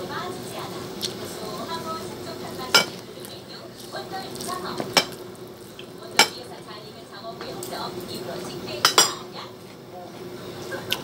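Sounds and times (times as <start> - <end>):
tableware clinking on ceramic dish: 2.7 - 3.0, 8.8 - 9.2.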